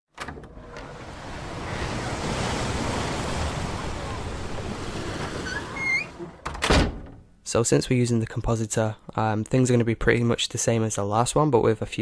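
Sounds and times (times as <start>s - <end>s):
ocean surf breaking: 0.5s - 6.4s.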